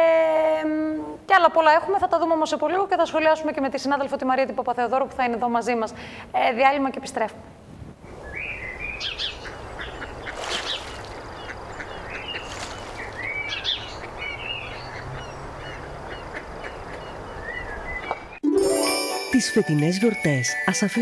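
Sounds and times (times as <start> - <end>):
birds chirping and calling: 8.2 - 18.4.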